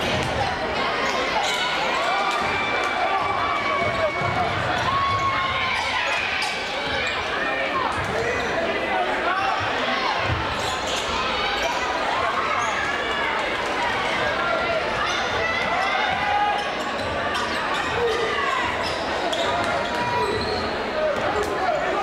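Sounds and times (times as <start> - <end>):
voices of players and spectators: 0.0 - 22.0.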